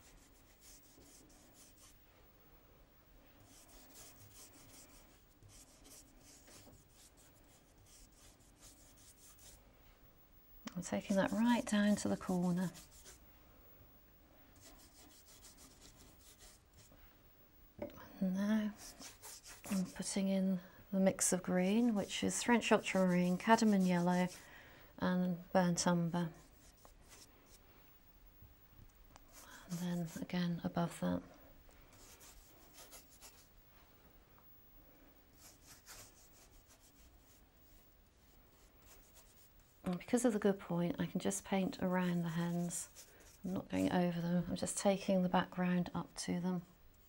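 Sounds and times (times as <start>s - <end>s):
paintbrush rubbing on paper: 0.0s - 2.0s, 3.4s - 9.6s, 11.0s - 13.2s, 14.6s - 17.0s, 18.8s - 20.2s, 21.7s - 24.4s, 26.4s - 27.6s, 29.3s - 30.3s, 31.9s - 33.5s, 35.3s - 39.9s, 42.0s - 43.9s.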